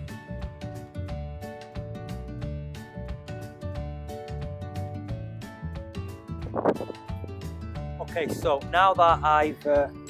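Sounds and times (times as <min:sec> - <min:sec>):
plucked guitar music with bass: 0:00.0 - 0:10.0.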